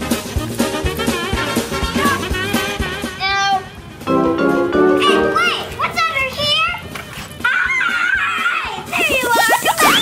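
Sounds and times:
background music with held notes: 0.0s - 9.1s.

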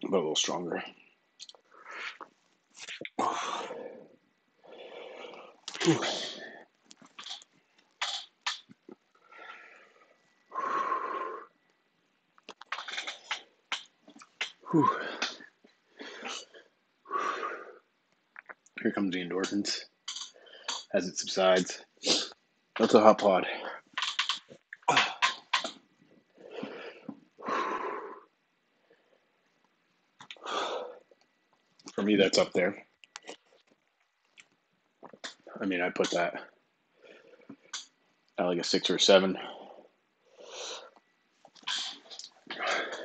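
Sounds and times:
man breathing in pain: 14.7s - 15.4s.

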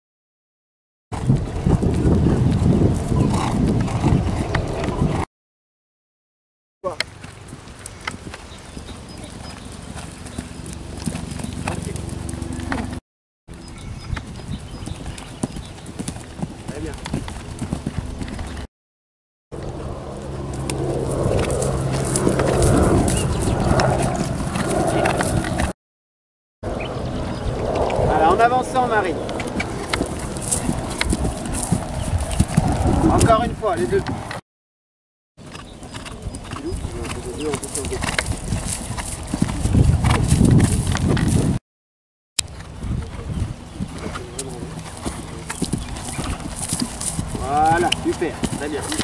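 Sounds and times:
horse hoofbeats on turf: 14.0s - 18.6s, 29.4s - 32.9s, 35.5s - 41.6s, 42.5s - 49.0s
heavy low rumble: 19.6s - 25.7s
horse breathing: 29.4s - 33.1s.

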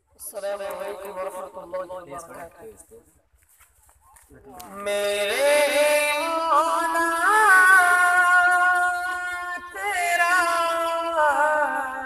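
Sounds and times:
man singing unaccompanied: 0.2s - 1.9s, 4.6s - 12.0s.

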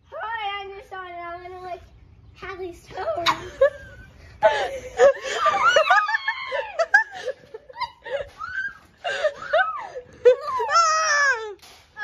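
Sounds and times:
girl giggling: 3.2s - 11.6s.

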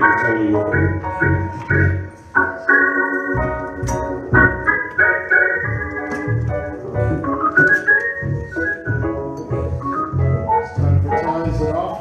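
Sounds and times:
electric organ chords: 0.0s - 12.0s
pulsing bass notes: 3.3s - 5.0s, 8.2s - 11.9s.

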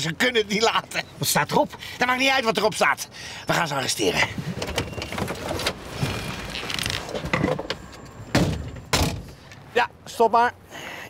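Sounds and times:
rustling: 4.3s - 7.8s
car door opening: 4.4s - 9.5s
car door slamming: 7.2s - 9.4s.

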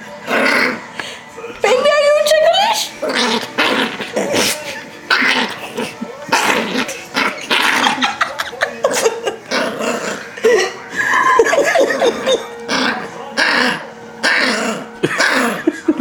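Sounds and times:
small dog growling: 0.2s - 0.9s, 3.0s - 8.2s, 8.9s - 10.3s, 12.1s - 15.7s.

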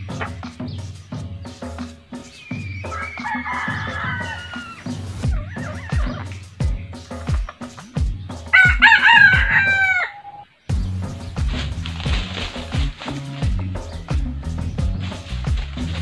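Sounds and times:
rooster crowing: 2.9s - 6.1s, 8.5s - 10.4s.

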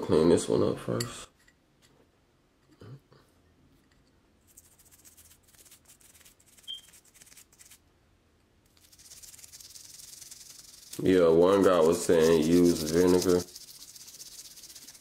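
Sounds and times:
toothbrush scrubbing metal: 4.5s - 7.8s, 8.7s - 15.0s.

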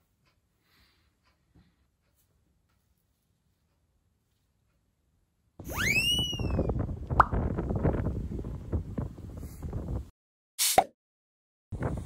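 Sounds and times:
wind buffeting microphone: 5.6s - 10.1s, 11.7s - 12.0s
whistle-like tone: 5.7s - 6.7s.

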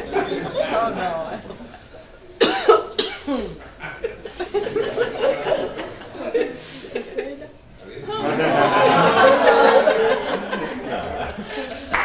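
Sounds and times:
loud exaggerated cough: 2.4s - 4.1s.

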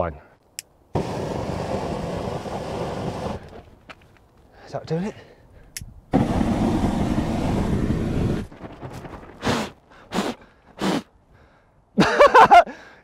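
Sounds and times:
hiss of burning spray: 1.0s - 3.7s, 6.1s - 8.5s.

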